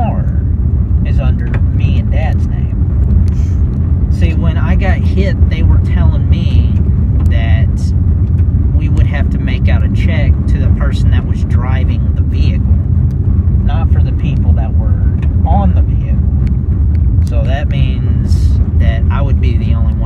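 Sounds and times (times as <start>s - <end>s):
person talking: 0.0s - 0.4s, 1.0s - 2.8s, 4.1s - 7.9s, 8.8s - 12.6s, 13.6s - 16.2s, 17.2s - 20.0s
car rumble inside cabin: 0.0s - 20.0s.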